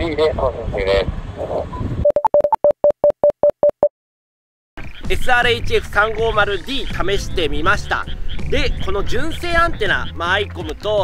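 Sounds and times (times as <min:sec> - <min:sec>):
short electronic beeps: 0:01.8 - 0:03.9.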